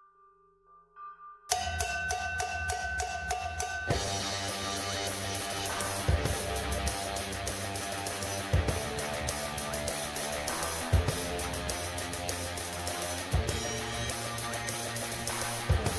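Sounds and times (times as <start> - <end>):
acoustic drum kit: 3.6 - 15.9
pop-rock backing track with guitar: 3.9 - 15.9.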